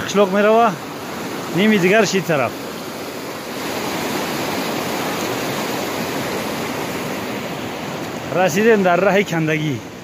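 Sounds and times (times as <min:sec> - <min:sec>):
stream rushing over rocks: 0:00.0 - 0:10.0.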